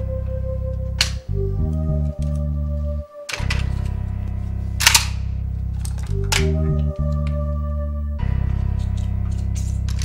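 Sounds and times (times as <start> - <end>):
tense droning background music: 0.0 - 10.0.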